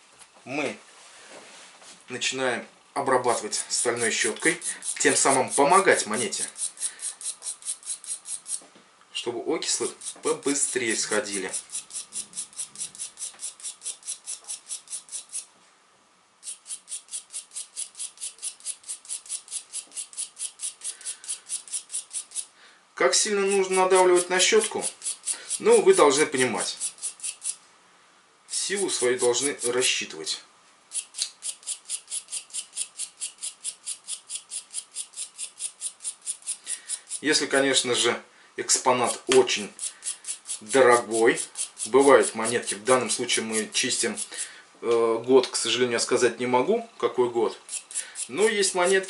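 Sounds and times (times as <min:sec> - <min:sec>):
wire brush scrubbing coin: 0:03.3 - 0:08.6, 0:09.6 - 0:15.5, 0:16.4 - 0:22.5, 0:23.2 - 0:27.6, 0:28.5 - 0:29.9, 0:30.9 - 0:37.6, 0:39.0 - 0:44.5, 0:47.6 - 0:49.0.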